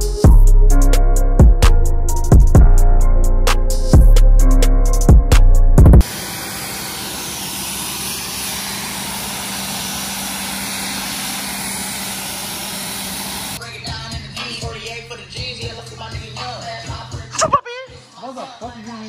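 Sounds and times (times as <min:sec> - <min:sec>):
music with heavy beat: 0:00.0 - 0:06.1, 0:13.6 - 0:19.0
pressure washer spraying water: 0:06.0 - 0:13.6.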